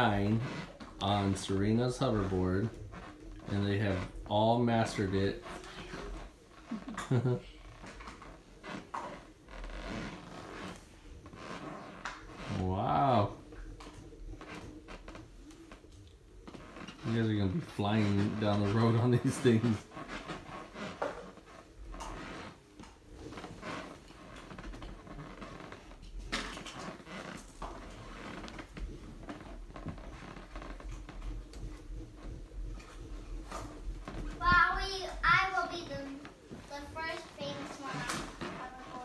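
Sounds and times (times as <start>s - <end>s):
child's voice: 34.3s - 39.0s.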